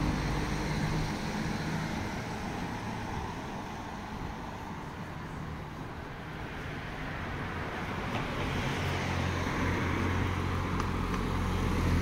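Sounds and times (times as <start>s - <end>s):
steady traffic noise: 0.0s - 12.0s.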